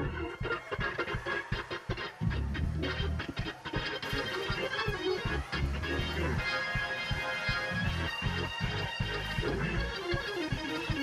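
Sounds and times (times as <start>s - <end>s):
fast percussive beat: 0.0s - 11.0s
organ playing: 0.0s - 11.0s.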